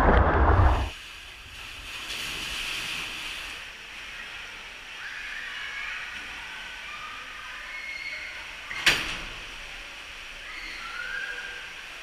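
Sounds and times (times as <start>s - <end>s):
water running down a slide: 0.0s - 12.0s.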